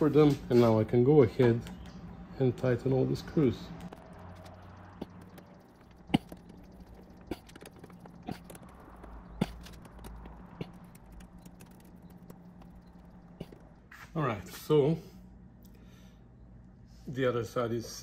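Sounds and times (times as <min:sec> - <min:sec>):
sharp metallic clicks: 0:03.7 - 0:13.9.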